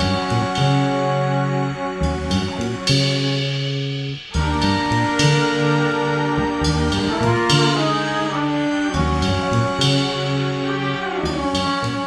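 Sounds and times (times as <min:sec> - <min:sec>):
horn section chords: 0:00.0 - 0:12.0
upright bass: 0:00.0 - 0:12.0.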